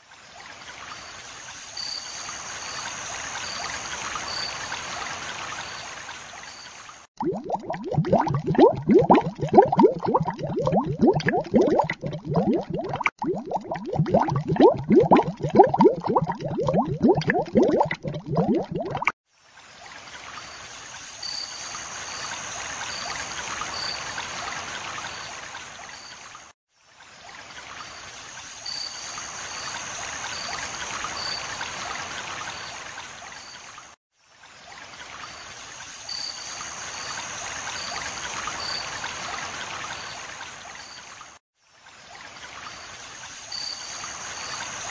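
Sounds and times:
water bubbling and gurgling: 0:07.2 - 0:19.2.

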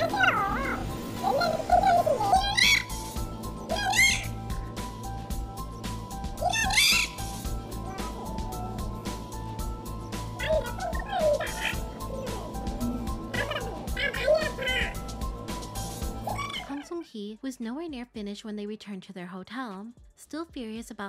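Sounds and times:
background music with low pulse: 0:00.0 - 0:21.0
woman's high-pitched voice mocking: 0:16.3 - 0:17.1.

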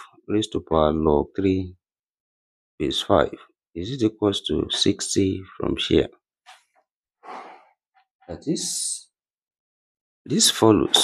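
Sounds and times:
person sighing: 0:07.2 - 0:07.7
person breathing: 0:07.2 - 0:07.8.

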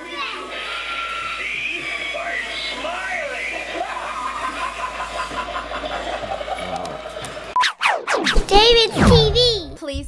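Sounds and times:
fast falling swooshes: 0:07.6 - 0:09.5.

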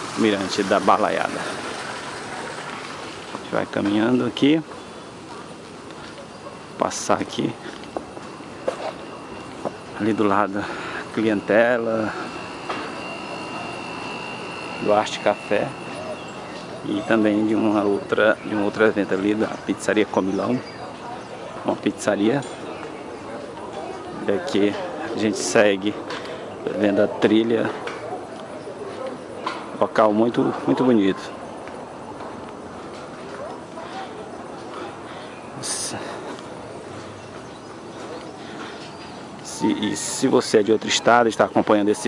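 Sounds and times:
faint high steady tone: 0:00.0 - 0:42.0
faint voices: 0:00.0 - 0:42.0
steady background noise: 0:00.0 - 0:42.0
footsteps on metal grating: 0:07.6 - 0:10.8.

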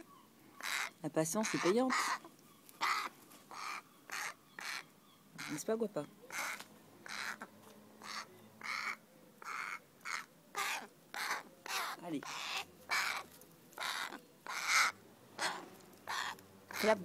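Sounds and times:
crow cawing: 0:00.6 - 0:05.6, 0:06.3 - 0:17.0.

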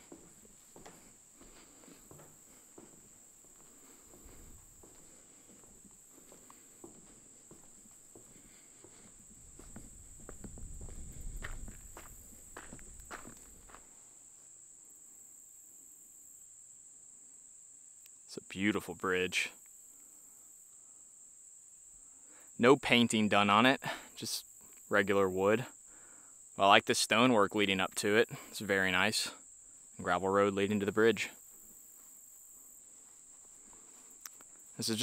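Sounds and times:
footsteps on gravel: 0:00.0 - 0:13.9
footsteps on wooden planks: 0:00.0 - 0:13.9
high insect drone: 0:00.0 - 0:35.0.

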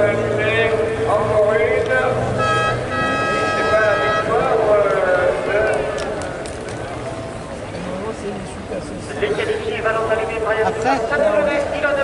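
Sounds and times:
voice over loudspeakers: 0:00.0 - 0:06.2, 0:08.1 - 0:12.0.

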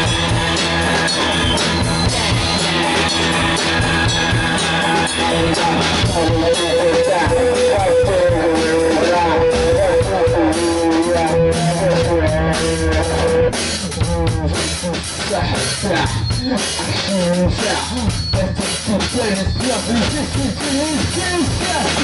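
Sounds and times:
drum kit: 0:00.0 - 0:22.0
electric guitar: 0:00.0 - 0:22.0.

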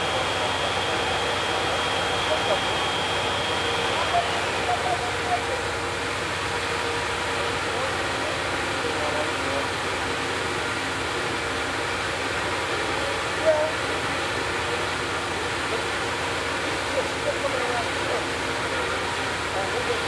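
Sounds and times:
faint distant voices: 0:00.0 - 0:11.4
idling train hum and hiss: 0:00.0 - 0:20.0.

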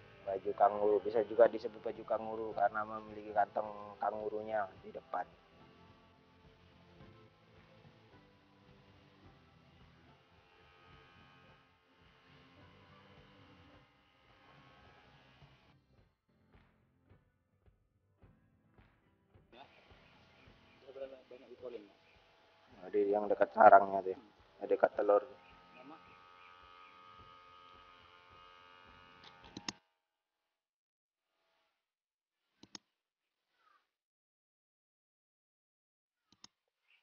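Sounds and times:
small pump motor buzzing: 0:00.0 - 0:15.8, 0:19.6 - 0:29.9
sharp clicks: 0:29.2 - 0:29.8, 0:32.6 - 0:32.8.

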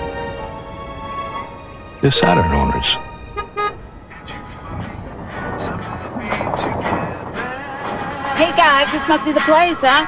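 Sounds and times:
vehicle horn toots: 0:02.1 - 0:04.0.

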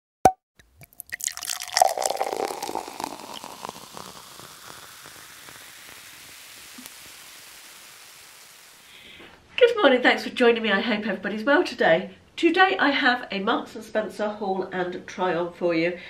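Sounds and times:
steady low hiss: 0:02.0 - 0:12.5.

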